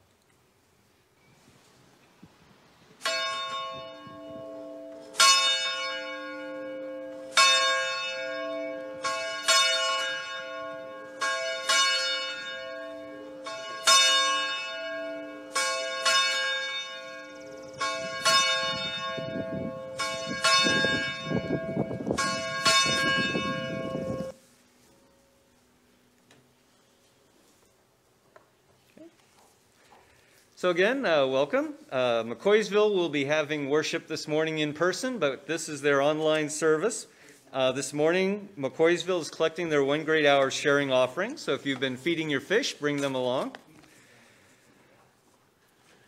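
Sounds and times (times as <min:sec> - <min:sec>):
church bell ringing: 0:03.0 - 0:25.8.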